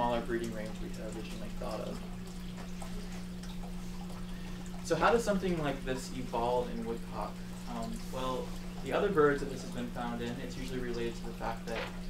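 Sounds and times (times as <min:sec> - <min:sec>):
steady low hum: 0:00.0 - 0:12.0
faint small clicks and rustles: 0:11.0 - 0:12.0.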